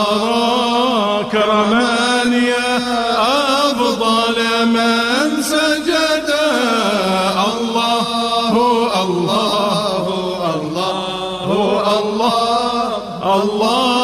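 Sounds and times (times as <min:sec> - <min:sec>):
man chanting a hymn: 0:00.0 - 0:14.0.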